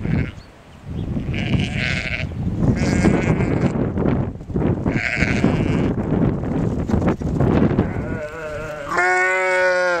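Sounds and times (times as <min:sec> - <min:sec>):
sheep bleating: 0:00.0 - 0:00.4, 0:01.2 - 0:03.8, 0:04.9 - 0:06.0, 0:07.8 - 0:10.0.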